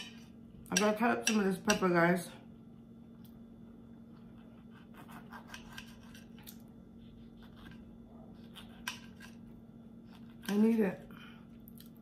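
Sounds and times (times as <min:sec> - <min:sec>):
faint steady hum: 0:00.0 - 0:12.0
knife and fork scraping plate: 0:04.5 - 0:06.5, 0:07.2 - 0:09.4.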